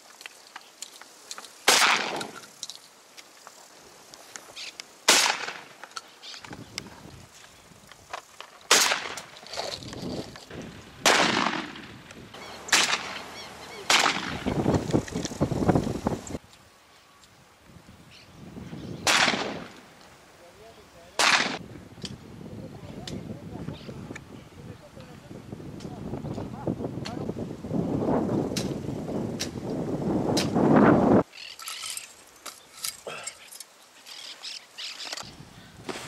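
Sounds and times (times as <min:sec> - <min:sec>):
shotgun shots: 0:01.7 - 0:02.4, 0:05.1 - 0:05.7, 0:08.7 - 0:09.3, 0:11.0 - 0:12.0, 0:12.6 - 0:14.6, 0:19.0 - 0:19.8, 0:21.2 - 0:21.6.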